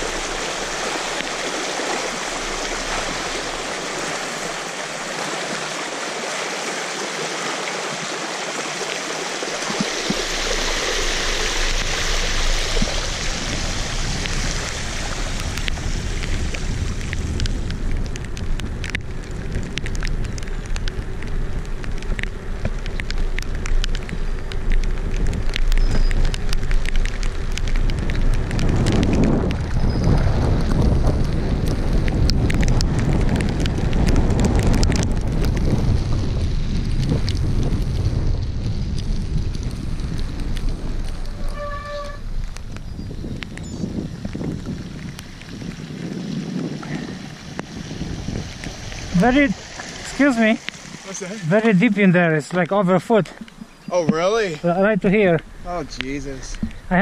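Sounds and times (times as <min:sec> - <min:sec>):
wheels hissing through water: 0:00.0 - 0:18.2, 0:43.8 - 0:52.4
bike tyre rush: 0:00.0 - 0:57.0
wind buffeting microphone: 0:09.5 - 0:57.0.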